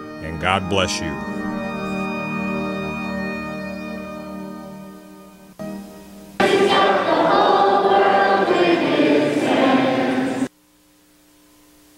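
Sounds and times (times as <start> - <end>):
choir singing: 6.4 - 10.5.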